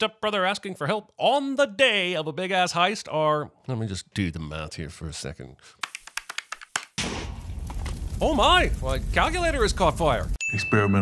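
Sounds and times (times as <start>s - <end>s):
steady rush of fire: 7.0s - 10.4s.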